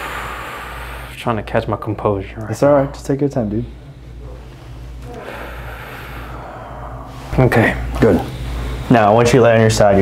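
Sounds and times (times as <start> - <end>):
man breathing out heavily: 0.0 - 1.2, 5.0 - 7.4.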